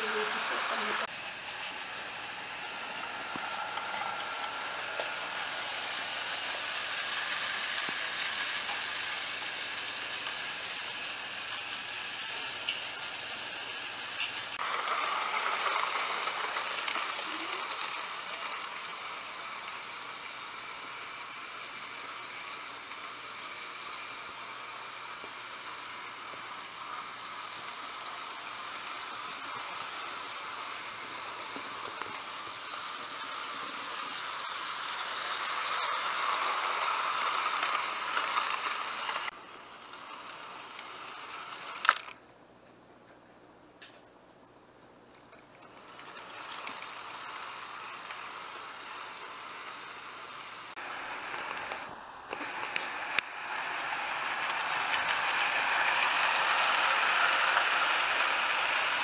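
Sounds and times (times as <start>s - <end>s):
model train motors whirring: 0.0s - 42.2s, 45.3s - 59.0s
wheels rolling on rails: 0.0s - 42.2s, 45.3s - 59.0s.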